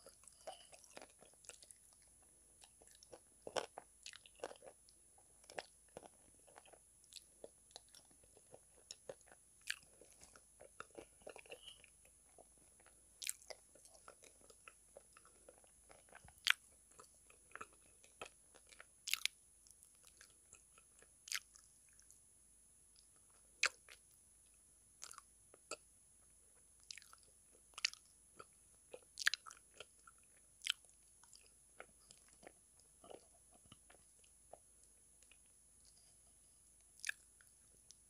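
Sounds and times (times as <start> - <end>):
wet chewing and lip smacks: 0.0 - 4.8, 5.4 - 22.2, 25.0 - 25.8, 26.8 - 36.1, 36.9 - 38.0.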